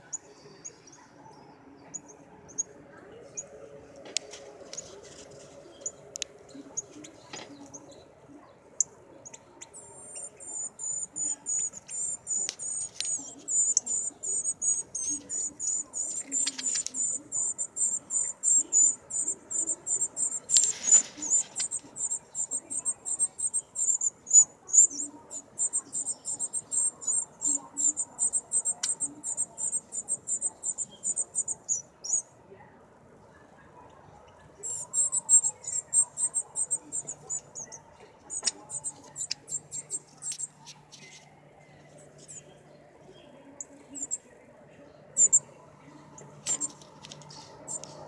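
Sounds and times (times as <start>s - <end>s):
fledgling begging chirps: 5.7s - 32.4s, 34.4s - 44.3s, 45.0s - 48.0s.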